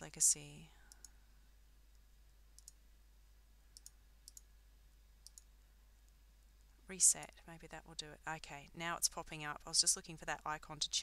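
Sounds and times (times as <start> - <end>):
computer mouse clicks: 2.6 - 2.8, 3.8 - 4.5, 5.2 - 5.5.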